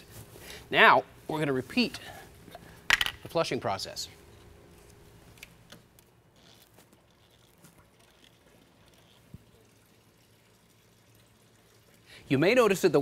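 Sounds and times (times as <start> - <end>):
water trickling into plastic pan: 6.9 - 12.2.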